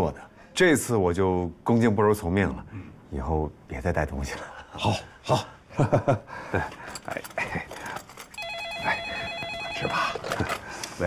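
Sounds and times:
desk telephone ringing: 0:08.4 - 0:10.7.

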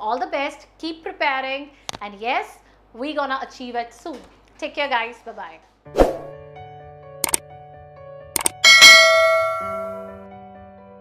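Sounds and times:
soft background music: 0:05.7 - 0:11.0
quick clicks: 0:07.2 - 0:07.4, 0:08.4 - 0:08.6
bright bell ding: 0:08.6 - 0:10.2.

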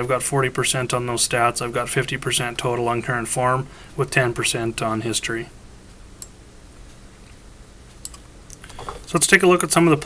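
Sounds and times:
low steady hum: 0:00.0 - 0:10.0
computer clicks: 0:07.9 - 0:09.0.

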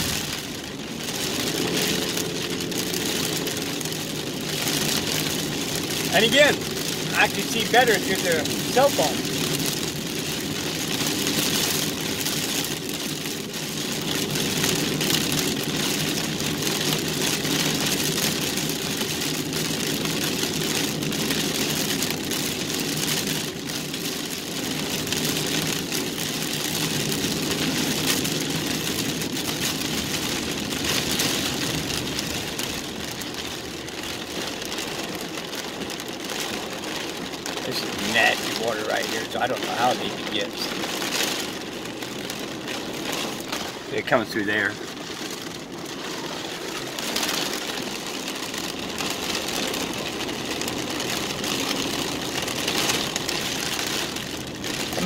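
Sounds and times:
car engine running: 0:00.0 - 0:55.0
rain hitting car roof: 0:00.0 - 0:55.0
tyres on wet road: 0:00.0 - 0:55.0.

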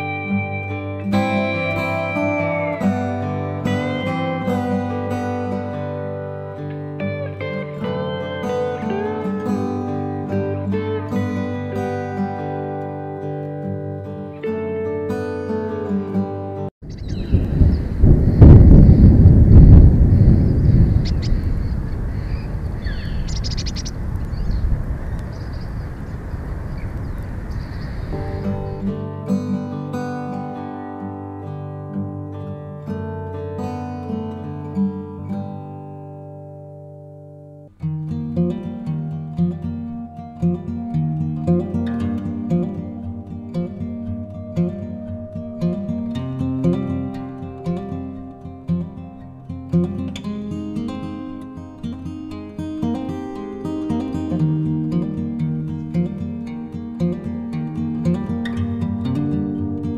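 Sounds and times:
plucked acoustic guitar music: 0:00.0 - 0:17.4, 0:28.0 - 0:59.9
loud low rumbling: 0:17.2 - 0:23.2.

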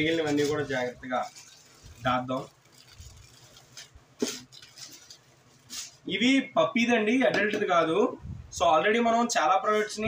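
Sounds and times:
plastic packaging crinkling: 0:00.0 - 0:06.1.

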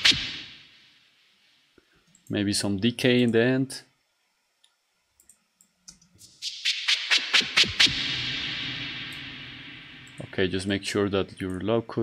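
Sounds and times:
faint computer mouse clicks: 0:04.6 - 0:06.0.

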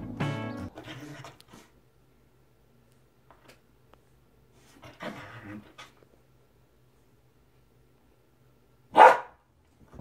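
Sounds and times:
dog barking: 0:08.9 - 0:09.4.

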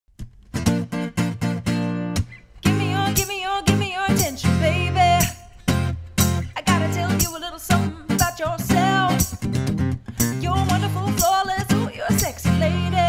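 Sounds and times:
acoustic guitar strumming chords: 0:00.2 - 0:13.0
woman singing: 0:02.6 - 0:05.6, 0:06.4 - 0:09.4, 0:10.2 - 0:13.0.

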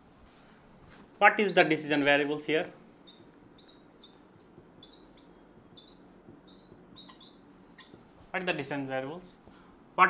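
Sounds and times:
marker squeaking on whiteboard: 0:01.3 - 0:08.3.

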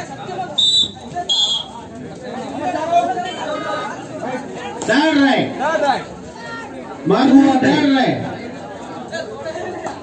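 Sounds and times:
men chattering: 0:00.0 - 0:10.0.

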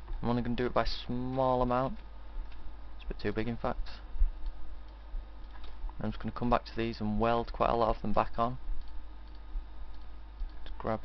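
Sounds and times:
low electrical hum: 0:00.0 - 0:11.0
computer mouse clicks: 0:08.8 - 0:10.8.

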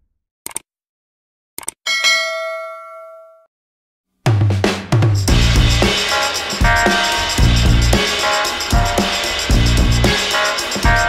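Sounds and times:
notification bell ding: 0:01.9 - 0:03.4.

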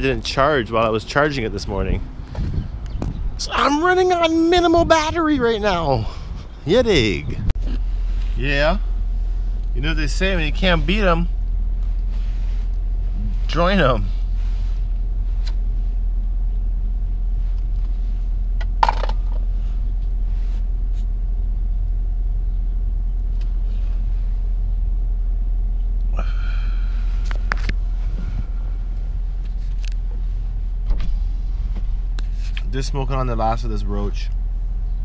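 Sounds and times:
car interior rumble: 0:00.0 - 0:35.0.

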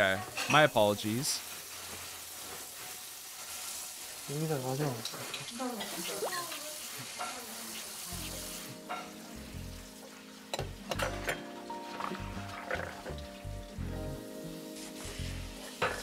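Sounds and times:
low background music: 0:08.1 - 0:16.0
tap running into a sink: 0:10.5 - 0:11.4, 0:12.0 - 0:13.3.

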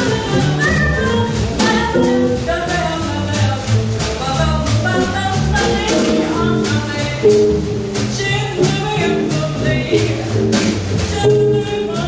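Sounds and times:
live band jamming: 0:00.0 - 0:12.0.

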